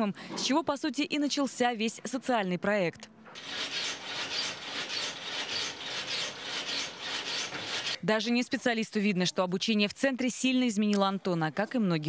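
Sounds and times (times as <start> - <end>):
rasping rubbing strokes: 3.4 - 8.0.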